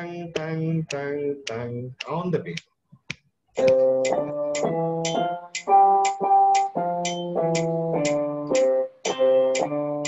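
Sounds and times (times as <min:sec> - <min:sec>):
metronome clicking: 0:00.0 - 0:02.7, 0:03.6 - 0:10.0
electronic keyboard notes: 0:03.6 - 0:10.0.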